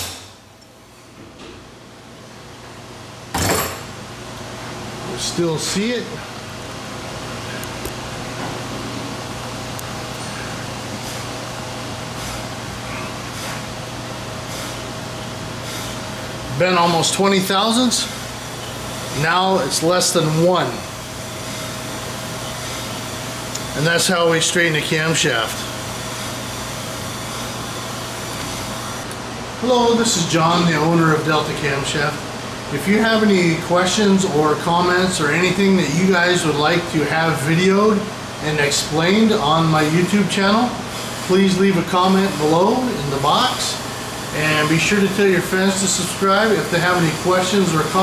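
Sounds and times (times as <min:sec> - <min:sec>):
workshop machine hum: 0:00.0 - 0:48.0.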